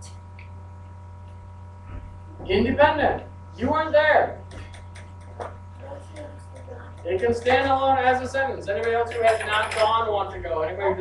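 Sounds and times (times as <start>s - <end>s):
indistinct voices talking: 2.4s - 11.0s.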